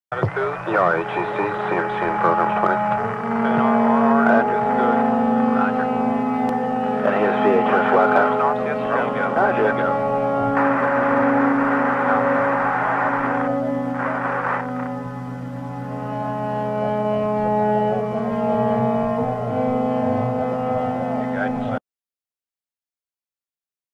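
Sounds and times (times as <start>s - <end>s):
garbled radio voices: 0.1s - 15.1s
radio static: 0.1s - 16.1s
steady low drone: 0.2s - 21.8s.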